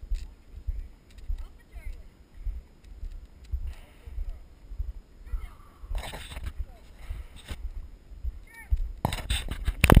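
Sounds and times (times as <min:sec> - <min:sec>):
wind rumble on microphone: 0:02.4 - 0:10.0
hand rubbing and knocking camera: 0:05.9 - 0:06.7, 0:08.7 - 0:10.0.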